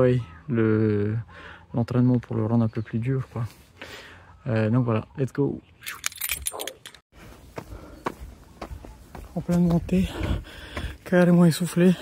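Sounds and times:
footsteps on asphalt: 7.2s - 12.0s.

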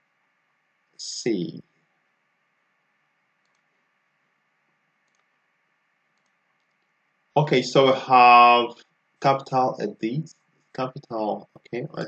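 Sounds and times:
faint room hiss: 0.0s - 12.0s
computer mouse clicks: 3.4s - 3.8s, 5.0s - 5.4s, 6.1s - 7.0s.

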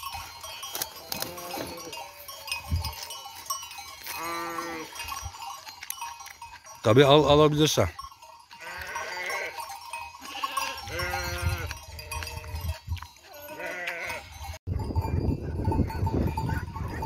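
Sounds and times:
sheep bleating: 0.9s - 2.0s, 4.0s - 5.0s, 8.5s - 12.7s, 13.3s - 14.3s.

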